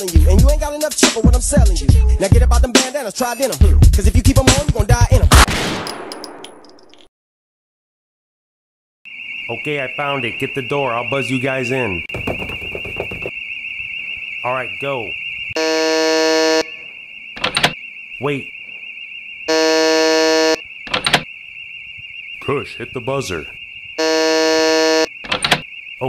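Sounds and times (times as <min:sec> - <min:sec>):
warbling electronic alarm: 0:09.1 - 0:26.0
door-entry buzzer: 0:12.1 - 0:13.4, 0:14.0 - 0:21.3, 0:24.0 - 0:25.8
rustling and knocks: 0:12.1 - 0:13.4.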